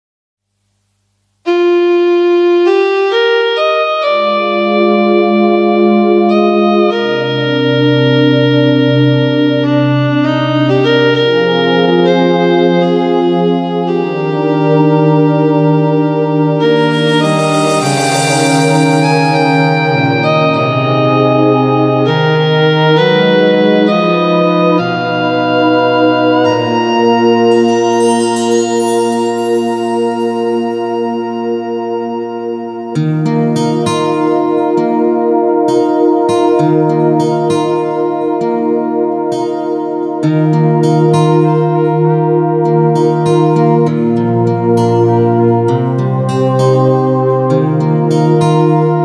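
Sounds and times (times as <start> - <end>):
electronic keyboard chords: 1.5 - 49.0
deep bass line: 16.6 - 22.0.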